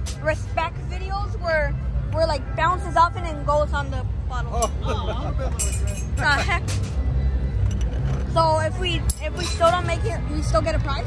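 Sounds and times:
people talking: 0:00.1 - 0:06.6, 0:08.4 - 0:11.0.

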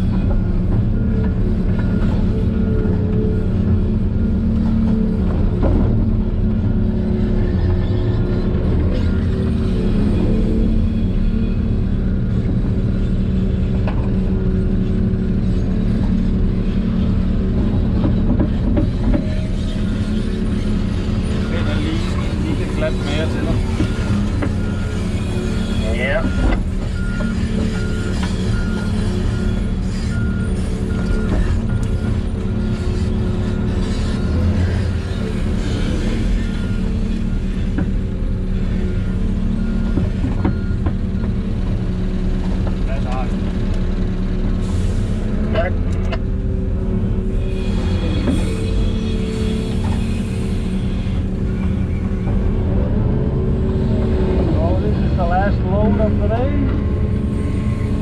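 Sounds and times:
excavator diesel engine running: 0:00.0 - 0:58.0.

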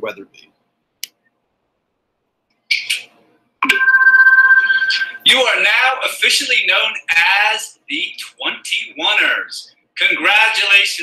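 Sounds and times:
two-pitch ringing tone: 0:03.6 - 0:05.2.

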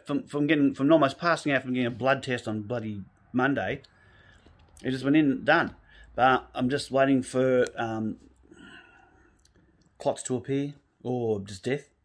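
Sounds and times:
faint breath: 0:03.9 - 0:04.7, 0:05.8 - 0:06.2, 0:08.4 - 0:09.9.

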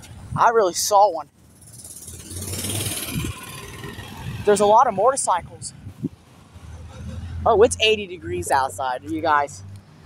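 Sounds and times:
motorcycle passing: 0:01.3 - 0:10.0.

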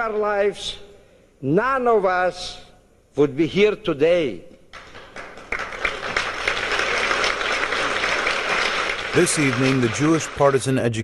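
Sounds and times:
audience applauding: 0:04.8 - 0:11.0.

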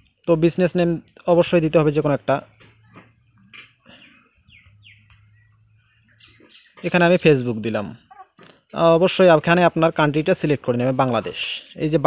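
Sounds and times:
low steady hum: 0:00.0 - 0:06.5
bird chirping: 0:00.0 - 0:08.9.

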